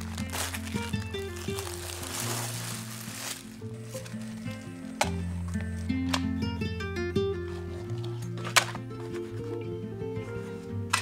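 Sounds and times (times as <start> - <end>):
crepe sizzling in frying pan: 0.0 - 4.4
soft melodic background music: 0.0 - 11.0.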